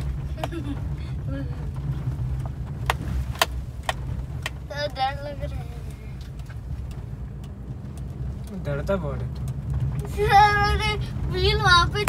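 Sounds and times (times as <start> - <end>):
car engine and tyres rumbling: 0.0 - 12.0
car interior clicks and rattles: 0.0 - 12.0.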